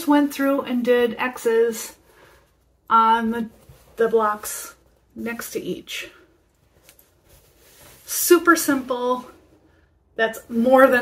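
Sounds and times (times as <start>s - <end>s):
person speaking: 2.9s - 6.3s, 8.0s - 9.4s, 10.2s - 11.0s.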